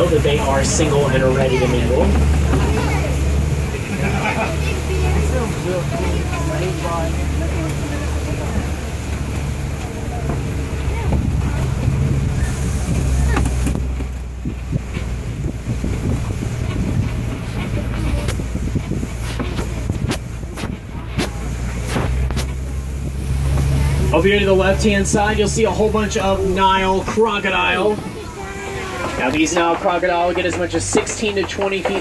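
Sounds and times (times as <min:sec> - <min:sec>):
truck engine and road rumble: 0:00.0 - 0:32.0
wind on microphone: 0:10.2 - 0:24.2
clicks and knocks from bumps: 0:29.3 - 0:32.0.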